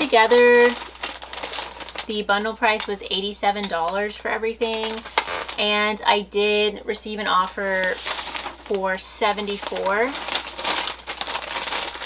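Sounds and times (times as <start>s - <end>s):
packing paper crinkling: 0.0s - 5.7s, 7.4s - 12.0s.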